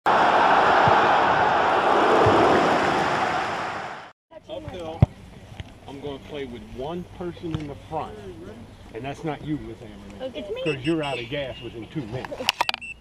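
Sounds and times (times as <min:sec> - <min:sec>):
loud rushing noise: 0:00.1 - 0:04.1
people talking outdoors: 0:04.3 - 0:12.7.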